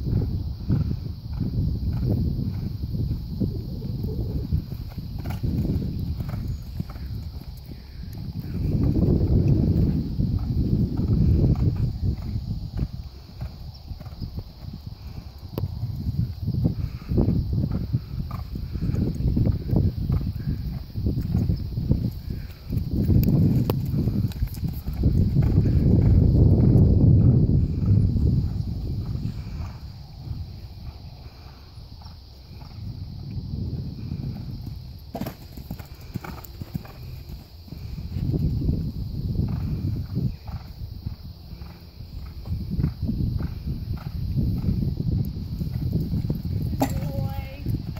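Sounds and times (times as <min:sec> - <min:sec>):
horse hoofbeats on sand: 0:35.1 - 0:38.0.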